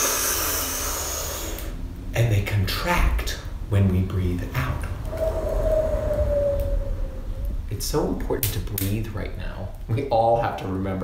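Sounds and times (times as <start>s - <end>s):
held falling tone: 4.6s - 7.8s.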